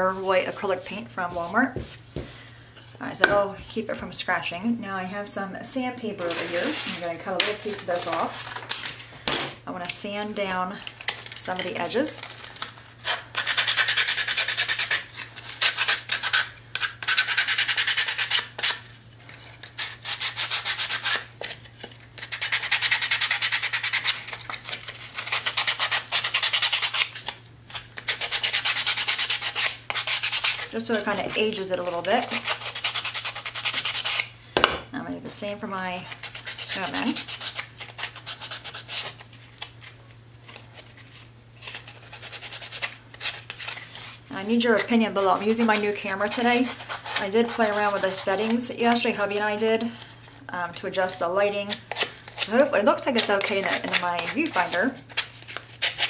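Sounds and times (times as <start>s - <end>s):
sandpaper scratching wood: 13.0s - 18.8s, 19.8s - 21.3s, 22.2s - 27.3s, 28.0s - 34.3s, 36.1s - 39.2s, 41.6s - 44.2s, 45.3s - 49.0s, 53.0s - 55.2s.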